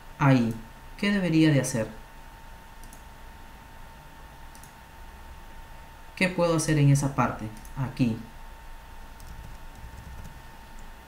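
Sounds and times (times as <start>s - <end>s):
thin constant whine: 0.0s - 11.0s
computer mouse clicks: 2.8s - 3.0s, 4.5s - 4.8s, 9.2s - 10.9s.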